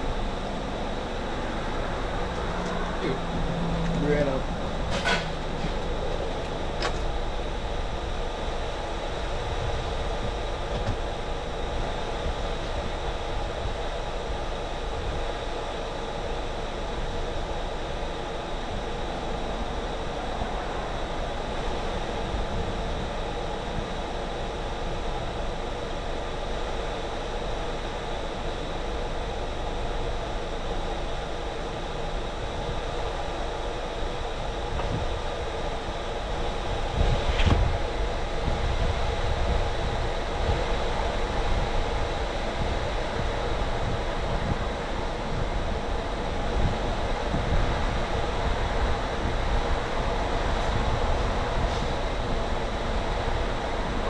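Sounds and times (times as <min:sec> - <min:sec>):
steady mechanical hum: 0:00.0 - 0:54.0.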